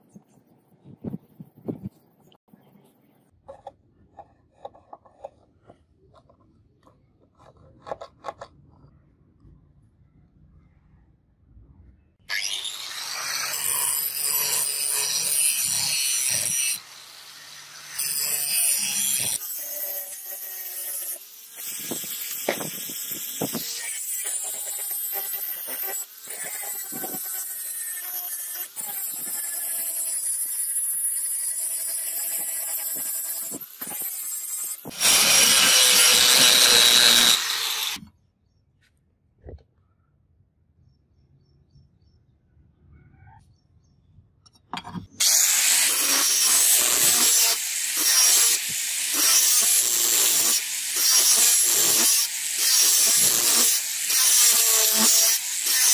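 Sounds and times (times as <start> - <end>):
angle grinder grinding steel: 12.3 - 38.0, 45.2 - 55.9.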